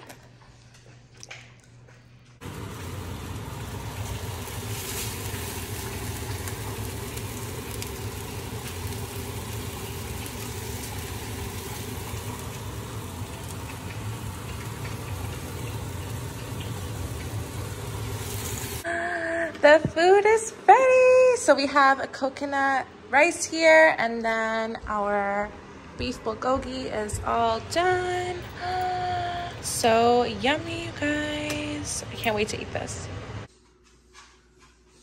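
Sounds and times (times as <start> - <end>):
meat sizzling in a frying pan: 2.4 - 18.8.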